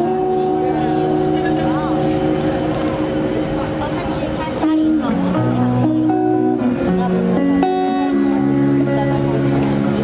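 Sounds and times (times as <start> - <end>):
guitar chord through small amplifier: 0.0 - 10.0
passing traffic: 0.0 - 10.0
voices of passers-by: 0.0 - 10.0.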